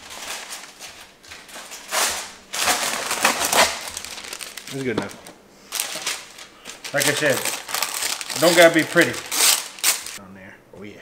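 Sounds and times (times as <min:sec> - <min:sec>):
paper rustling and crinkling: 0:00.0 - 0:10.2.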